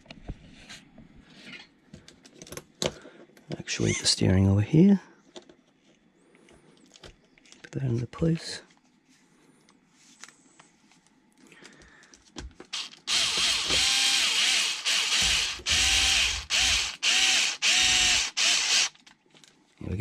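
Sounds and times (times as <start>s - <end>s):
electric screwdriver motor: 12.7s - 19.0s.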